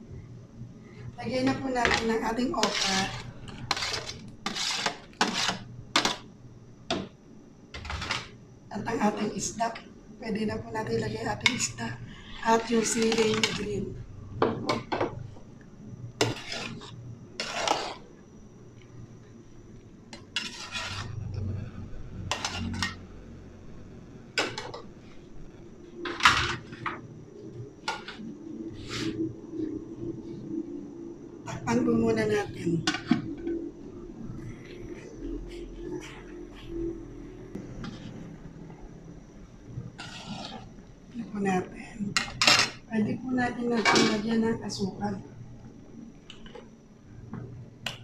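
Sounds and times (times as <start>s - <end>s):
low steady hum: 0.0s - 48.0s
metal ladle scraping a plate: 1.9s - 6.2s, 16.2s - 18.0s, 20.2s - 21.2s, 22.3s - 23.0s, 40.0s - 40.7s.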